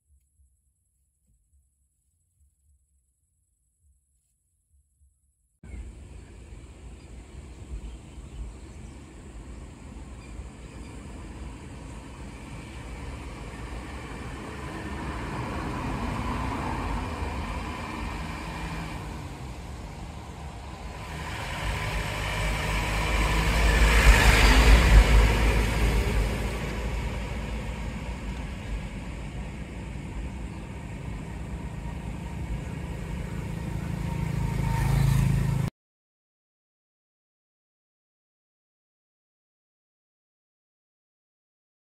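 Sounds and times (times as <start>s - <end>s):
vehicle passing by: 5.7s - 35.7s.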